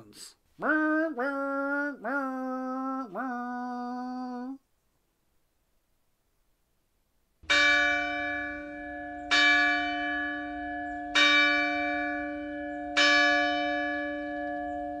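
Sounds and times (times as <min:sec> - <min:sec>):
deep bell ringing: 0:07.4 - 0:15.0.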